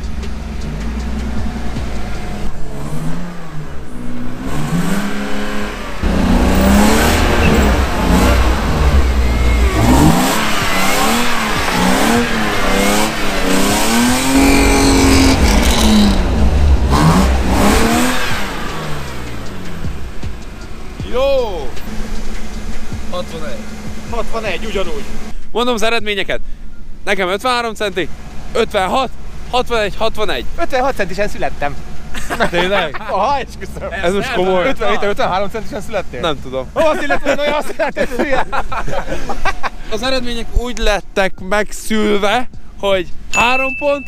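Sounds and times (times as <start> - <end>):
car engine revving: 0.0 - 25.4, 27.7 - 36.8.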